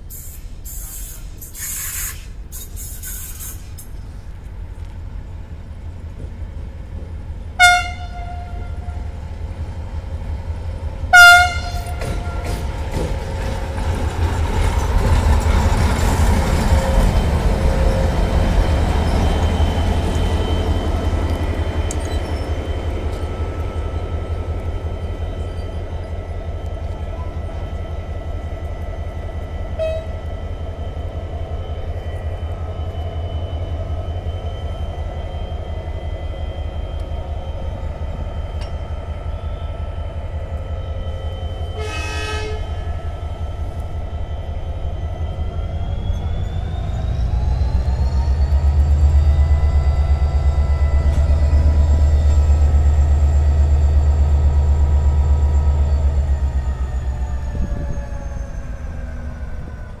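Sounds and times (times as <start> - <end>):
diesel locomotive engine: 0.0 - 60.0
train horn blast: 7.6 - 9.1, 11.1 - 12.6, 29.7 - 30.3, 41.7 - 42.9.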